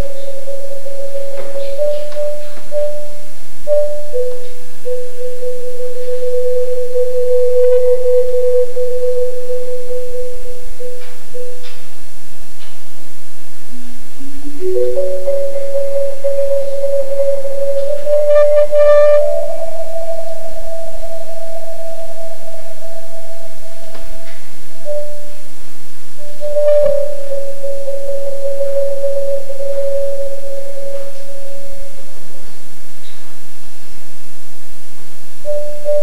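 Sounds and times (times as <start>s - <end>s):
marimba rolled notes: 0.0s - 11.6s, 14.4s - 25.4s
tape hiss: 0.0s - 36.0s.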